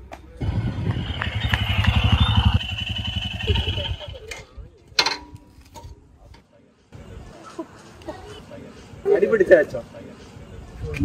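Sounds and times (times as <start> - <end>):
motorcycle engine running: 0.4 - 4.4.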